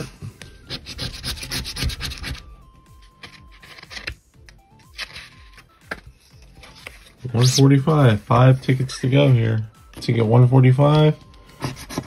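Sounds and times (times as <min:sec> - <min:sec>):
scratchy rubbing on cardboard ticket: 0:00.7 - 0:02.5, 0:11.6 - 0:12.0.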